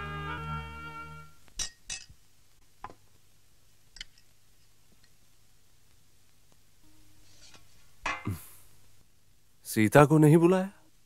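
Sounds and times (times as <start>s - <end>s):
metal spoon clinking on dishes: 1.6s - 2.1s.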